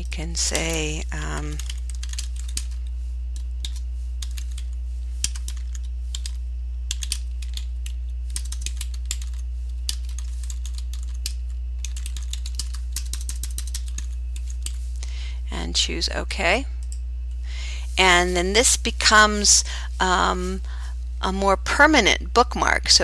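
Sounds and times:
steady low hum: 0.0 - 23.0
keyboard typing: 0.1 - 14.8.

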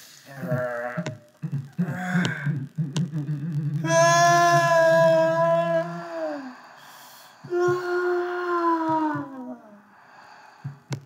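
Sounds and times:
person wailing: 0.3 - 6.6, 7.5 - 9.8.

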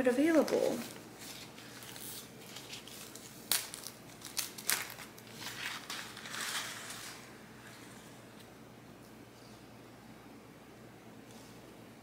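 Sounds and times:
paper crinkling and rustling: 0.2 - 8.0.

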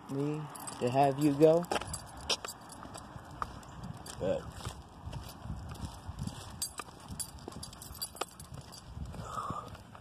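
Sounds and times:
footsteps on concrete: 0.1 - 10.0.

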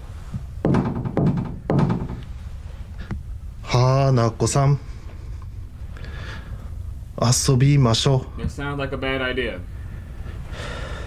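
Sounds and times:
knocks on stall door: 0.6 - 2.2.

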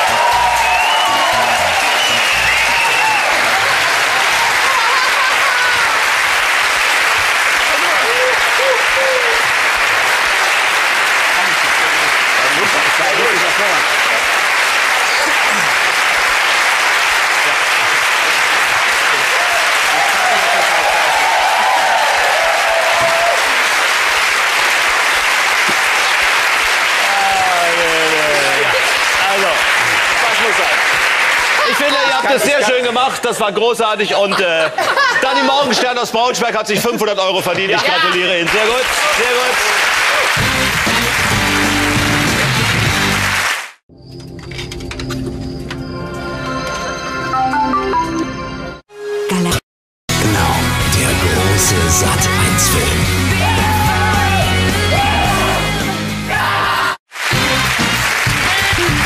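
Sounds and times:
audience applauding: 0.0 - 33.2, 37.5 - 43.8, 57.0 - 59.0.

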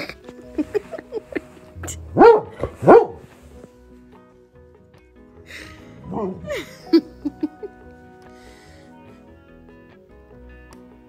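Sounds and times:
dog barking: 2.1 - 3.4.

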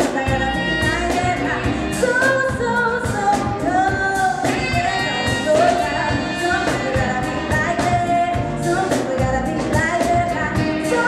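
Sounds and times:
saxophones: 0.0 - 2.9, 3.7 - 8.4
drums and cymbals: 0.0 - 11.0
electric guitar: 0.0 - 11.0.

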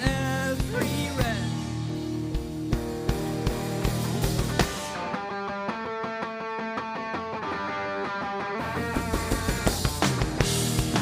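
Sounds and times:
electric guitar picking notes: 0.0 - 11.0.

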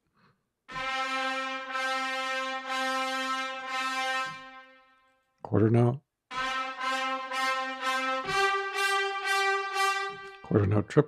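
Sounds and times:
trumpet ensemble repeated notes: 0.7 - 5.2, 6.3 - 11.0.

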